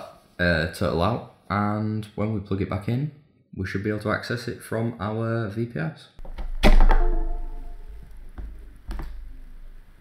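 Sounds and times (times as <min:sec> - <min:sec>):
sharp thunk on desk: 0:06.3 - 0:07.6.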